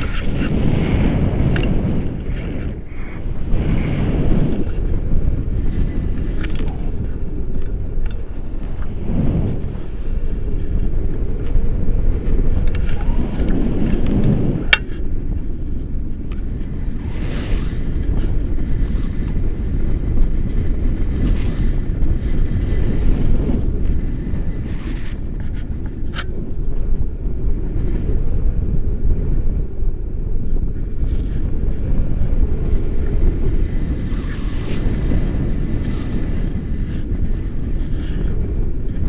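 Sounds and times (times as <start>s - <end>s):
wind buffeting microphone: 0.0s - 39.0s.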